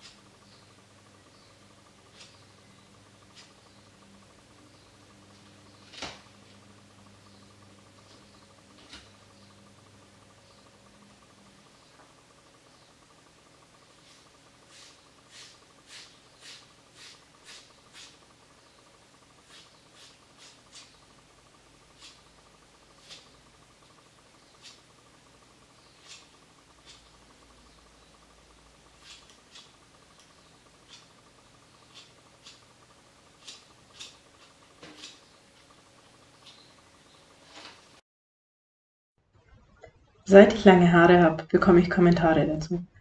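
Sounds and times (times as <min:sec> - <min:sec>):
scissors snipping hair: 0:02.1 - 0:02.4, 0:03.3 - 0:03.6, 0:19.4 - 0:21.0, 0:22.0 - 0:22.2, 0:23.0 - 0:23.4, 0:24.6 - 0:24.8, 0:26.0 - 0:27.1, 0:29.0 - 0:31.2, 0:31.8 - 0:32.7, 0:33.4 - 0:35.2.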